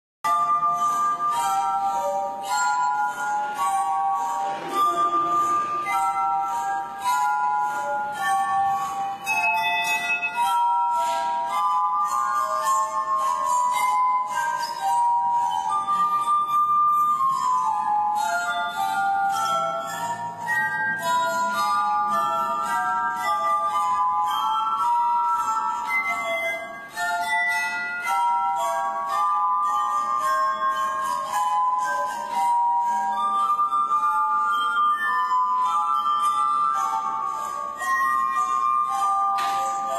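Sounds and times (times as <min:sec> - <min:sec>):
drinking glasses ringing melody: 0:00.2 - 0:39.9.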